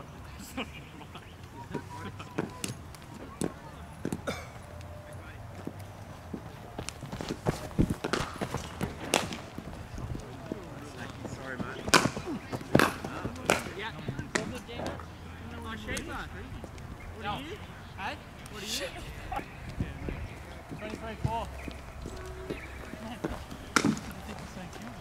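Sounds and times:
murmured background voices: 0:00.0 - 0:25.0
cricket balls striking bats: 0:01.7 - 0:05.0, 0:05.6 - 0:15.0, 0:19.6 - 0:25.0.

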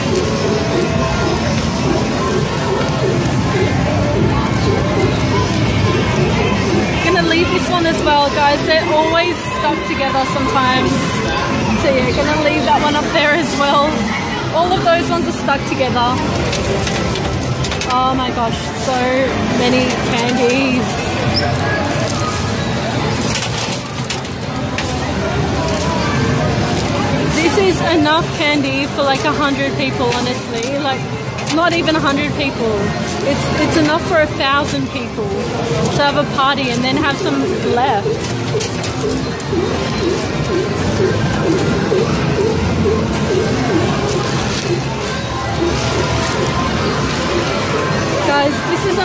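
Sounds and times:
arcade background noise: 0:00.0 - 0:49.0.

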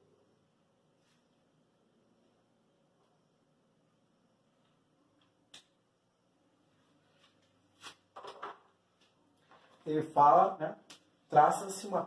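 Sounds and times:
marker knocks and rustles: 0:07.8 - 0:08.8.

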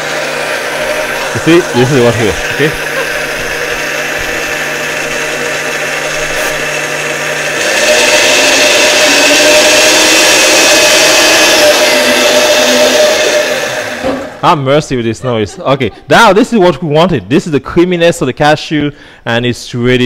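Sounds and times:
countertop blender running: 0:00.0 - 0:14.4.

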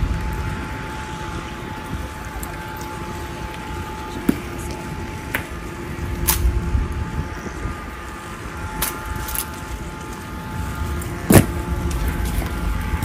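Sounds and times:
steady low rumble: 0:00.0 - 0:13.0.

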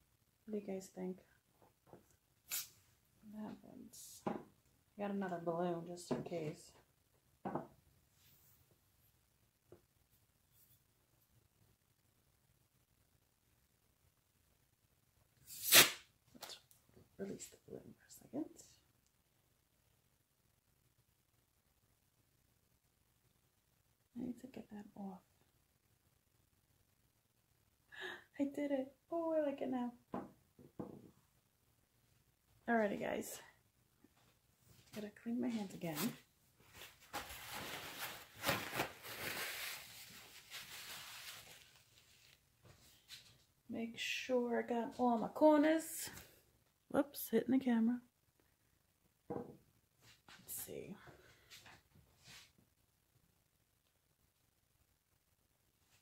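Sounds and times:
hands rubbing and rustling: 0:34.9 - 0:43.4.

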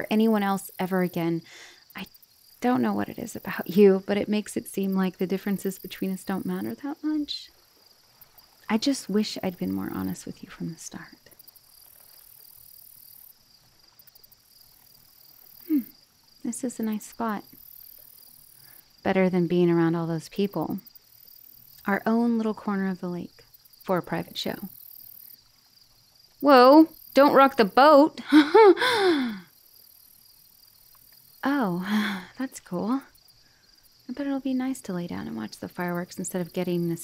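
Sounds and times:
crickets chirping: 0:00.0 - 0:37.0
shrill high insect layer: 0:00.0 - 0:37.0
woman gasping: 0:28.2 - 0:29.5, 0:31.8 - 0:32.4.

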